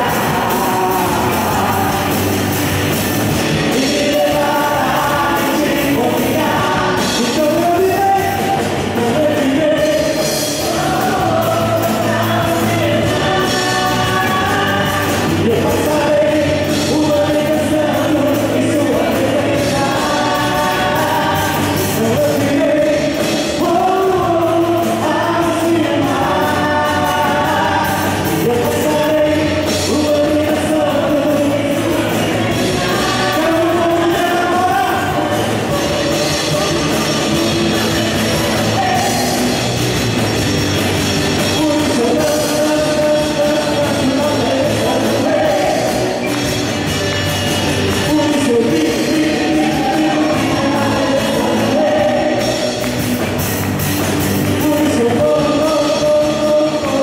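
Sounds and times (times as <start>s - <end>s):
voices singing together: 0.0s - 40.2s, 41.3s - 53.4s, 54.1s - 57.0s
drum kit: 0.0s - 57.0s
electric and acoustic guitars: 0.0s - 57.0s
live band playing: 0.0s - 57.0s.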